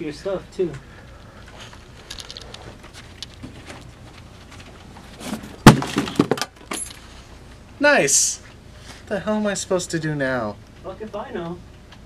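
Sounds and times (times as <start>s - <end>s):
objects clattering on floor: 1.5s - 7.0s
box crashing and breaking: 5.2s - 6.6s.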